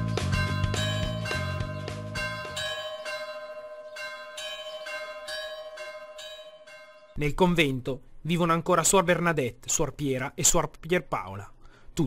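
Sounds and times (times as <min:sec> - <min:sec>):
church bell ringing: 0:00.3 - 0:07.2.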